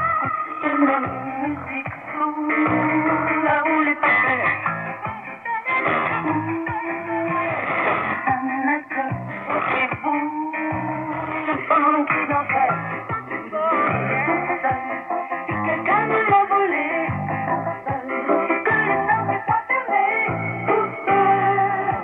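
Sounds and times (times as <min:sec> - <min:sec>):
guitar song on shortwave radio: 0:00.0 - 0:22.0.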